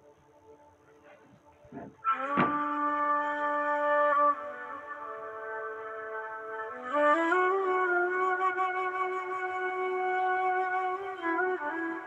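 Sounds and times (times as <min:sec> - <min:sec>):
devotional music: 0:00.0 - 0:12.0
sharp knock: 0:01.8 - 0:02.6.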